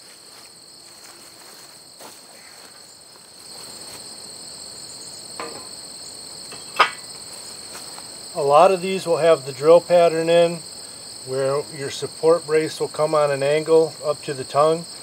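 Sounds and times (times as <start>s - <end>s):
insects trilling: 0.0s - 15.0s
light knocks on metal: 5.4s - 5.7s, 6.5s - 7.0s
steel rail clanking: 5.4s - 5.8s, 6.5s - 7.1s.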